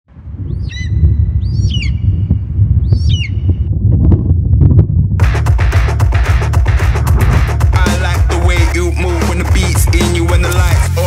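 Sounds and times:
swooping bird-like chirps: 0.4 - 3.7
deep bass drone: 1.1 - 11.0.

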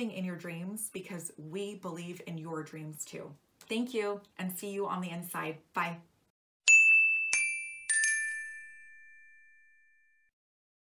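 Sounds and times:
bell-like chime: 6.6 - 10.3.

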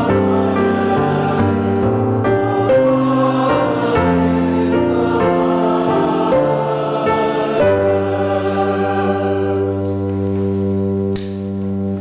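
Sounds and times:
organ sustained chord: 0.0 - 12.0.

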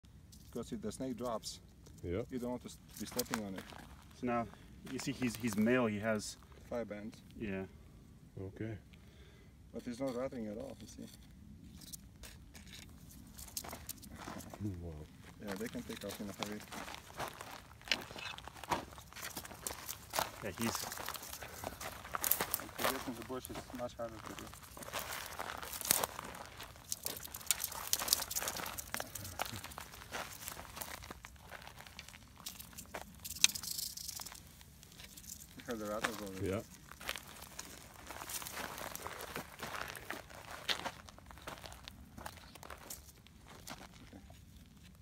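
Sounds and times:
dry brush crunching underfoot: 1.8 - 6.2, 10.6 - 44.9
shoes scuffing on gravel: 13.6 - 33.2, 35.6 - 43.9.

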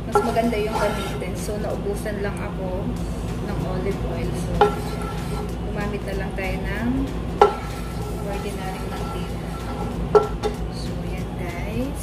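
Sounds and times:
wooden spoon stirring in frying pan: 0.0 - 1.5, 4.4 - 5.6, 7.4 - 10.5
steady low hum: 0.0 - 12.0
spoon knocking against pan: 7.4 - 7.8, 10.1 - 10.6.

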